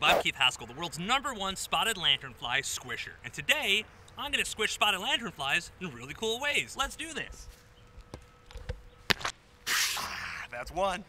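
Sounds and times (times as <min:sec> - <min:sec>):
loud breathy hiss: 0:09.7 - 0:10.4.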